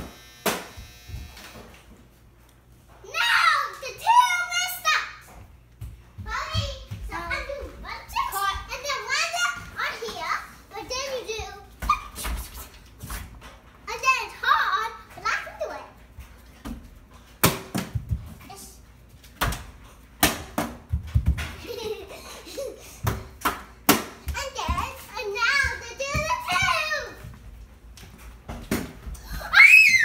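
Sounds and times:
child's voice: 0:03.0 - 0:05.4, 0:06.2 - 0:12.7, 0:13.9 - 0:16.0, 0:24.3 - 0:27.3.

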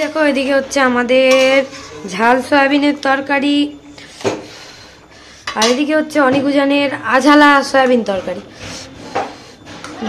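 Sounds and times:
metal spatula clanking on pot: 0:01.2 - 0:01.8.

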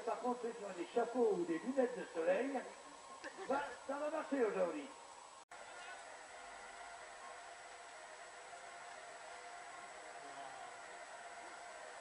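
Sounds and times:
faint steady hiss: 0:00.0 - 0:12.0
murmur of distant voices: 0:00.0 - 0:12.0.

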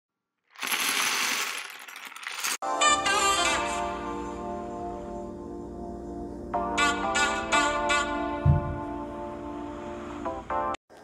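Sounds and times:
plastic pieces clattering: 0:00.5 - 0:02.6.

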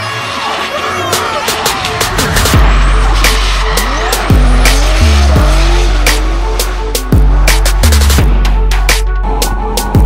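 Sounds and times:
tyres squealing: 0:00.0 - 0:07.8
electronic music with heavy bass: 0:00.0 - 0:10.0
car engine revving: 0:00.6 - 0:10.0.

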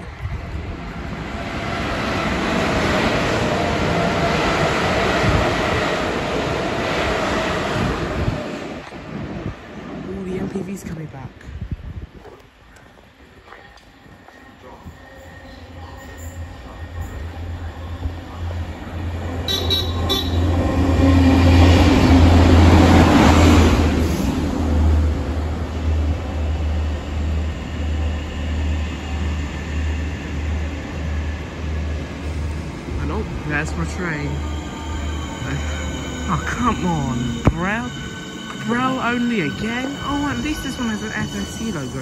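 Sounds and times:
diesel rail vehicle passing: 0:00.0 - 0:11.7, 0:12.6 - 0:42.0.

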